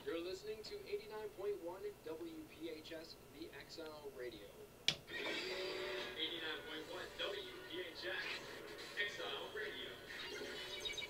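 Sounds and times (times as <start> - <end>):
recorded voice playing back: 0.0 - 4.7
pre-recorded station id: 0.0 - 11.0.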